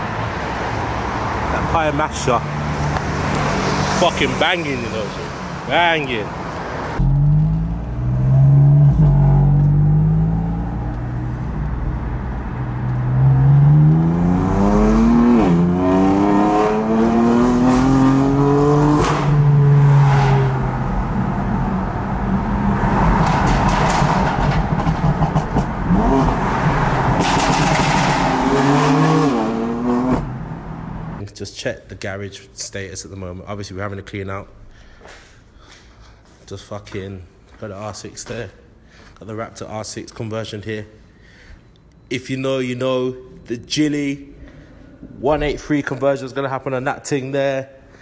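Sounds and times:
car engine accelerating through gears: 6.9s - 31.2s.

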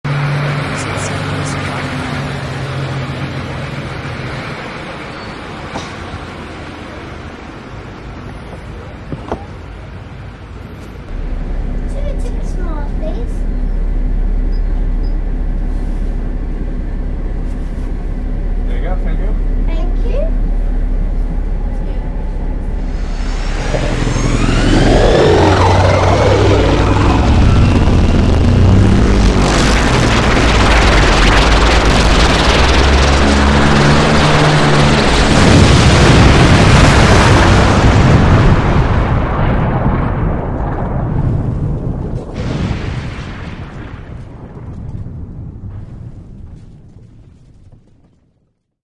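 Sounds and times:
road traffic noise: 0.0s - 39.2s
bus engine idling: 0.5s - 23.0s
low steady hum: 11.0s - 47.9s.

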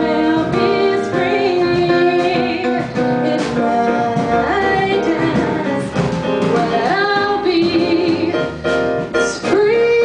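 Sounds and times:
upright bass: 0.0s - 10.0s
woman singing jazz ballad: 0.0s - 10.0s.

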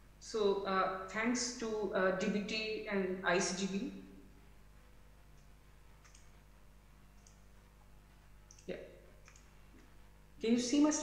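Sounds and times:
faint mouse clicks: 5.4s - 6.4s, 7.1s - 7.4s, 8.5s - 10.0s.

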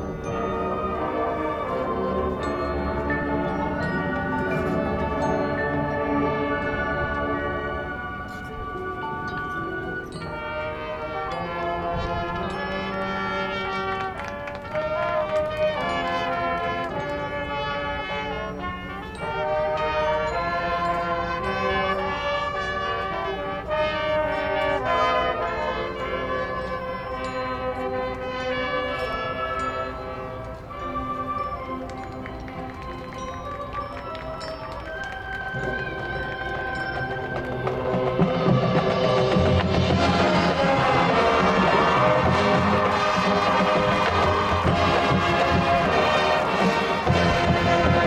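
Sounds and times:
brass sustained chords: 0.0s - 33.2s, 34.1s - 48.0s
marching band playing softly: 0.0s - 48.0s
percussion hits: 31.7s - 48.0s.

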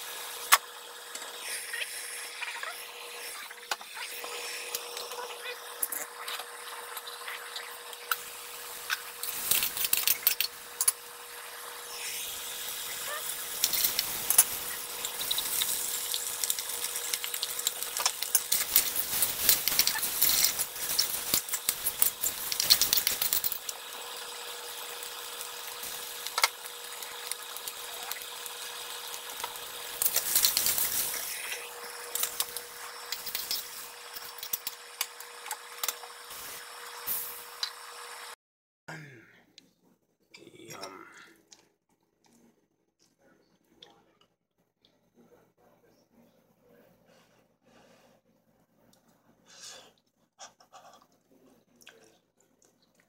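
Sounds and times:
rice sizzling: 0.0s - 38.4s.

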